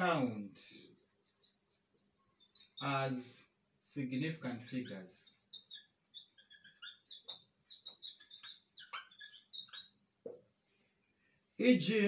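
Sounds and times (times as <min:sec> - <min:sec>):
marker squeaking on whiteboard: 0:00.9 - 0:03.0, 0:04.0 - 0:10.4.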